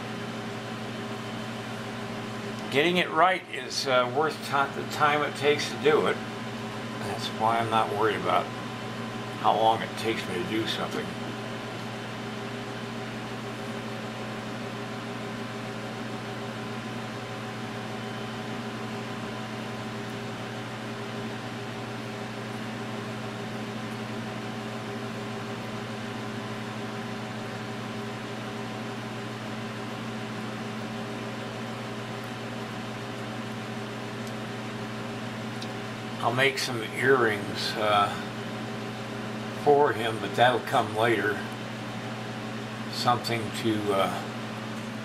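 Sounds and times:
room heater humming: 0.0s - 45.0s.

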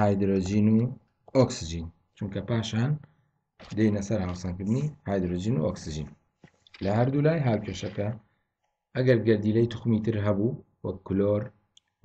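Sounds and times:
man speaking: 0.0s - 8.3s, 9.0s - 11.6s.

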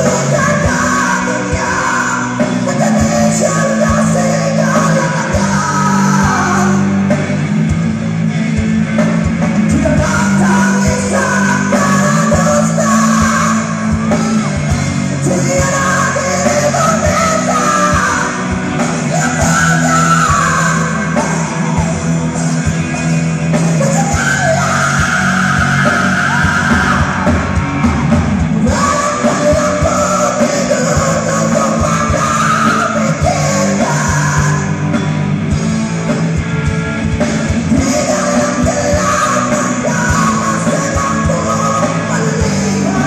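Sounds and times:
bass and drums: 0.0s - 43.0s
electric guitars: 0.0s - 43.0s.

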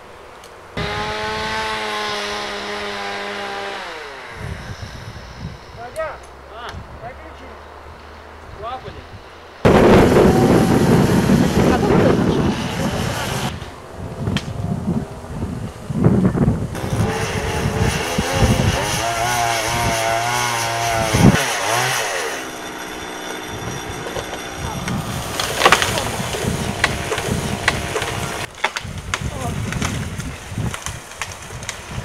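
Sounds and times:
chainsaw cutting wood: 0.8s - 6.4s, 9.7s - 13.6s, 16.7s - 32.0s.

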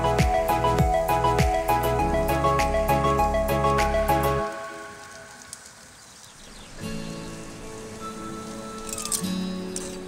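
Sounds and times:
background music with held notes: 0.0s - 5.8s, 6.5s - 10.0s.

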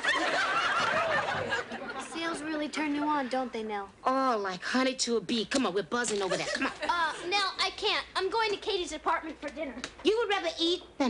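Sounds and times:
studio audience laughing: 0.0s - 2.3s.

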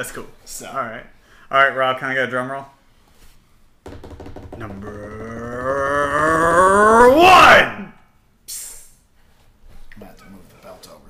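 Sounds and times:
man calling out long rising word: 4.7s - 7.9s.

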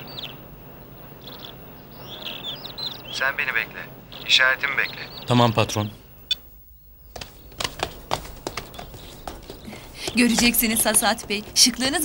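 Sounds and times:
footsteps on tiles: 7.0s - 12.0s.

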